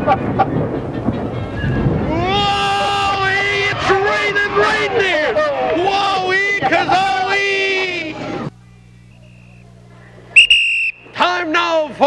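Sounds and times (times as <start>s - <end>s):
steady low hum: 0.0s - 12.0s
shrill whistle blast: 10.4s - 11.2s.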